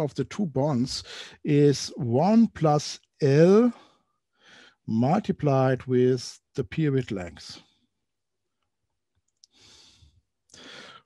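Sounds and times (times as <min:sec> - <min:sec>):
man breathing: 0:01.0 - 0:01.4, 0:03.8 - 0:04.8, 0:09.4 - 0:11.0.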